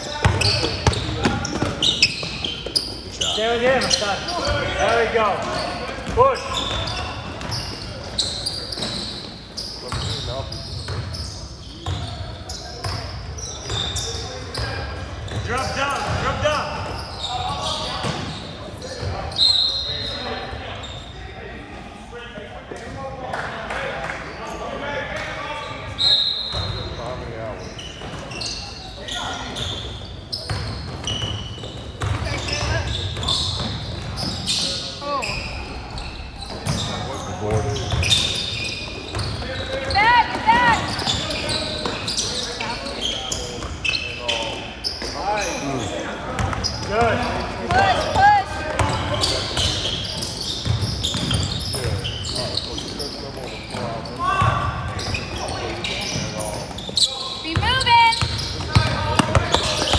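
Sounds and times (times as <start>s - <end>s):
sneaker squeaks: 0.0s - 21.3s, 25.5s - 59.9s
basketball dribbling on court: 58.2s - 59.9s.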